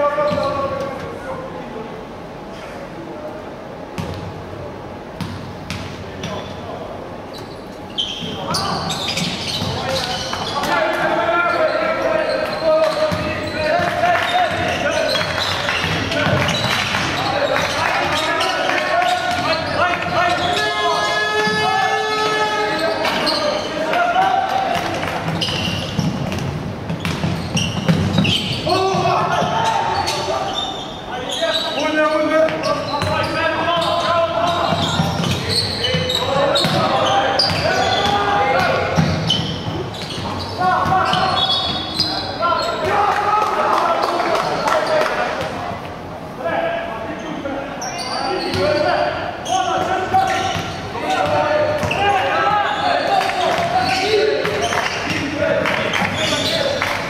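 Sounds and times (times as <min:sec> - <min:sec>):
players and coaches shouting: 0:09.8 - 0:24.9, 0:28.6 - 0:39.0, 0:40.4 - 0:45.4, 0:48.2 - 0:56.8
basketball bouncing on hardwood floor: 0:24.8 - 0:29.2.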